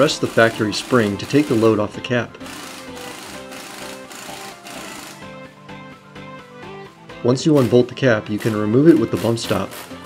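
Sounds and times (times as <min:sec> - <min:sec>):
impact wrench running: 0:00.0 - 0:05.4, 0:07.5 - 0:10.0
background music: 0:00.0 - 0:10.0.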